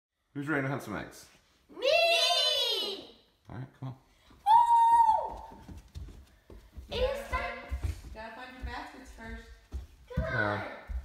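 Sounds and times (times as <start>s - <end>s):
child squealing: 4.5s - 5.4s
footsteps on carpeted stairs: 5.0s - 11.0s.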